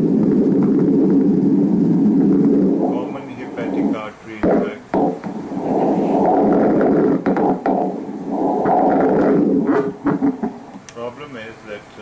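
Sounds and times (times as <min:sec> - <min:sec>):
doppler blood flow rushing: 0:00.0 - 0:10.8.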